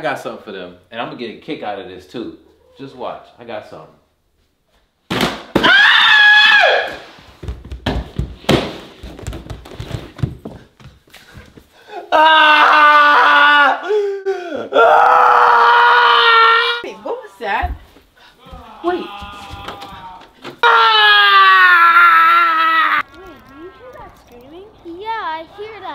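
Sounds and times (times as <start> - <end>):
yells of pain: 5.6 - 6.9, 12.1 - 16.9, 18.4 - 23.1
body falling down wooden stairs: 6.9 - 11.7, 17.6 - 20.7
man screaming: 12.1 - 16.8, 18.4 - 23.0.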